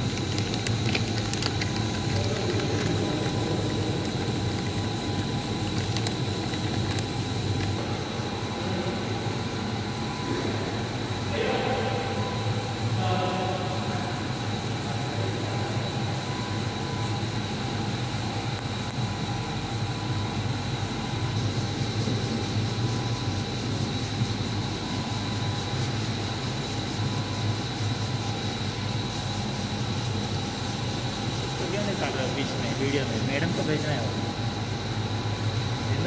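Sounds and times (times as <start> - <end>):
industrial machinery humming: 0.0 - 36.0
thin high whine: 1.1 - 36.0.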